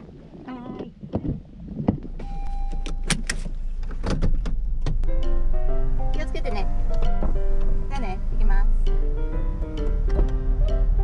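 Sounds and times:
car engine humming: 0.0 - 11.0
car door and body thunks: 1.0 - 5.4, 6.1 - 8.0, 9.3 - 11.0
short beep: 2.2 - 3.2
music: 5.0 - 11.0.

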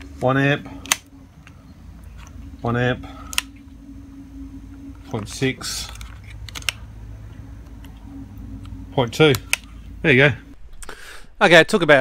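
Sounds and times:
steady low hum: 0.0 - 12.0
sharp plastic clicks: 0.8 - 1.5.

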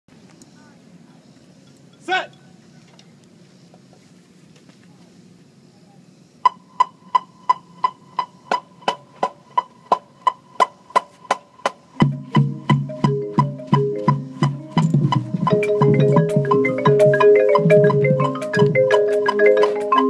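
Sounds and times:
keyboard percussion: 6.4 - 20.0
marimbas playing low notes: 6.5 - 20.0
metronome clicking: 15.5 - 20.0.

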